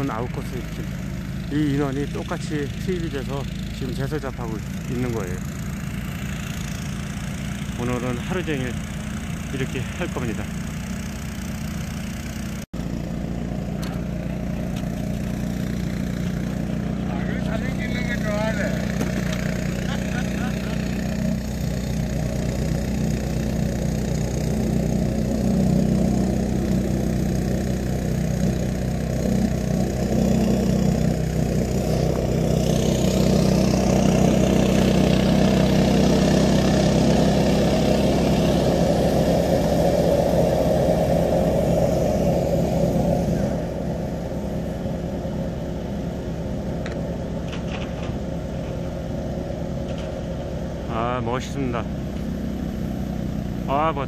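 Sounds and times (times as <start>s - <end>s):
snowblower engines running: 0.0s - 54.0s.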